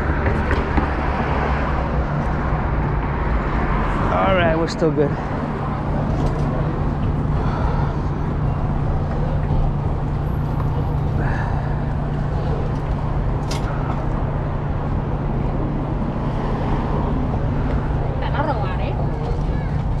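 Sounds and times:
busy street traffic: 0.0 - 20.0
faint voices of people: 17.8 - 20.0.

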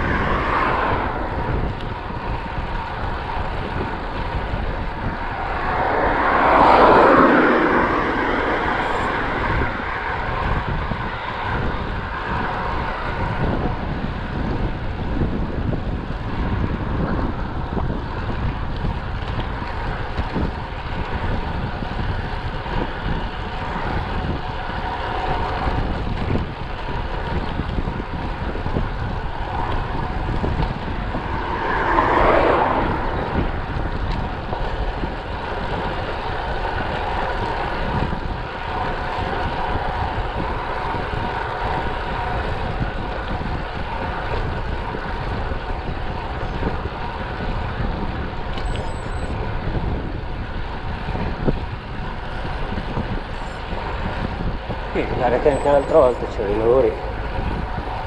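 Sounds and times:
tyre noise on asphalt: 0.0 - 58.0
wind rushing over microphone: 0.0 - 58.0.

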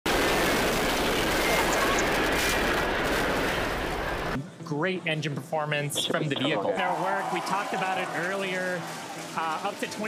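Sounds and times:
rocket engines roaring: 0.1 - 4.4.

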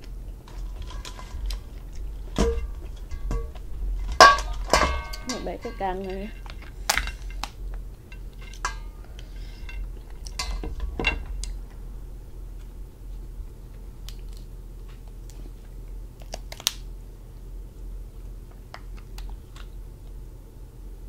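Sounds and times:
lobster shell cracking: 6.3 - 8.7, 16.2 - 16.8.

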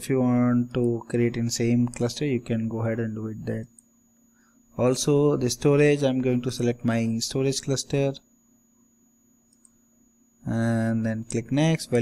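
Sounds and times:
faint computer mouse clicks: 1.8 - 2.1, 9.5 - 9.8.

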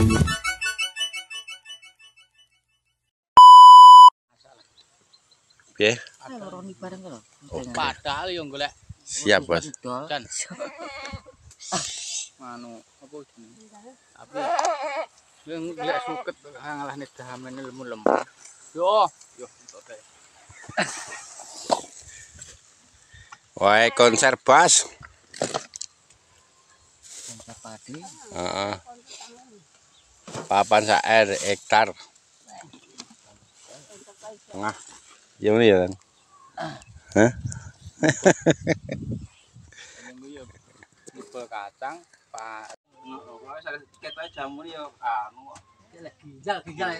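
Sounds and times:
goat bleating: 10.5 - 11.3, 14.3 - 16.4
people's voices: 36.6 - 39.0.

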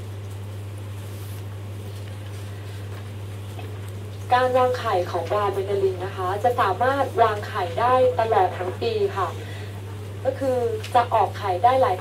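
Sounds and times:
steady low hum: 0.0 - 12.0
woman speaking through microphone: 4.3 - 9.6, 10.2 - 12.0.

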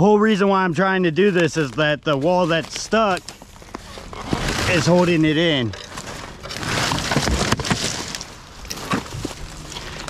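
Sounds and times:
dry leaves and twigs rustling: 1.1 - 10.0.

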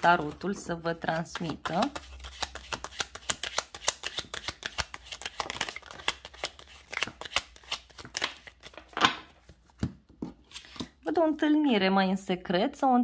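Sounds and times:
playing cards being shuffled: 0.0 - 9.8.

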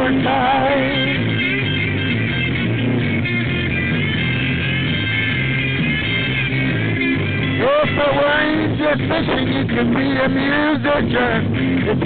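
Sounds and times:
person singing: 0.0 - 1.2, 7.6 - 12.0
rock band playing: 0.0 - 12.0.

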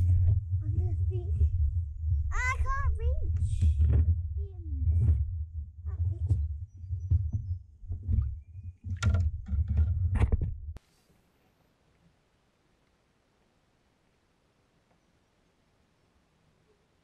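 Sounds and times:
handling rumble on microphone: 0.0 - 10.8
knocks and water splashes: 7.1 - 10.6.

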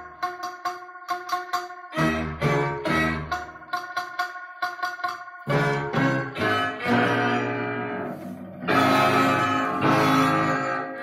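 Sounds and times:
ballad through speakers: 0.0 - 11.0
plucked guitar chords: 0.0 - 11.0.

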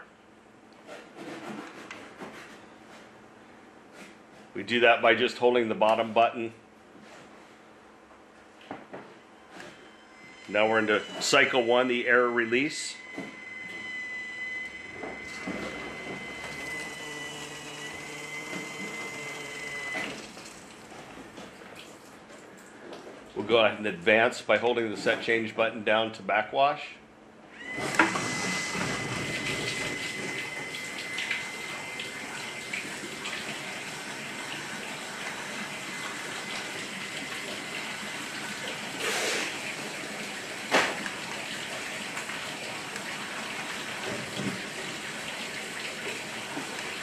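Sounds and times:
valve drive motor whining: 9.6 - 20.9, 27.5 - 39.9.

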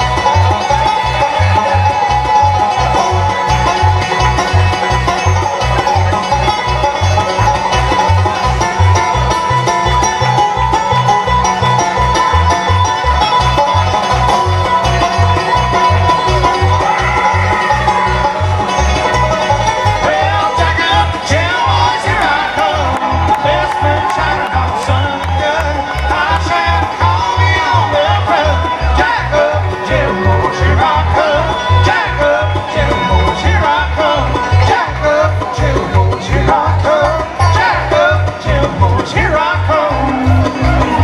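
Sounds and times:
banjo: 0.0 - 41.0
bluegrass band playing: 0.0 - 41.0.

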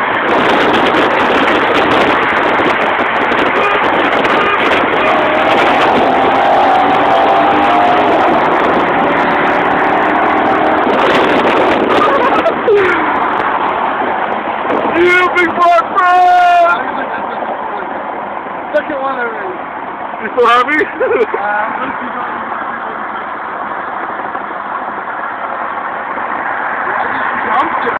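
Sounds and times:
car engine running: 0.0 - 27.9
road and wind noise: 0.0 - 27.9.

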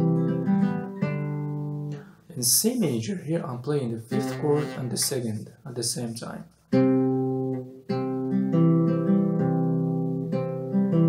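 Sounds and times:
classical guitar chords: 0.0 - 11.0.

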